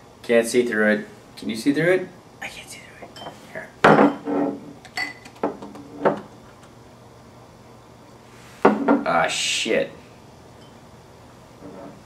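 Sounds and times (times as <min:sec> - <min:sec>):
glass clinking: 0:03.1 - 0:05.3, 0:10.5 - 0:10.9
glass knocking on a table: 0:03.2 - 0:04.6.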